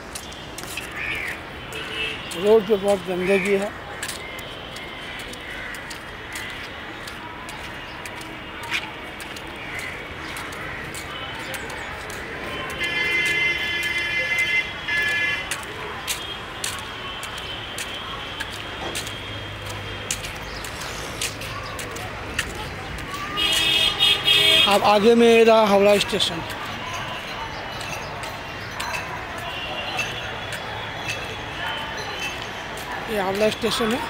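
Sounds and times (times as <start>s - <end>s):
street traffic: 0.0s - 34.0s
vehicle horn: 12.6s - 15.5s, 23.4s - 24.8s.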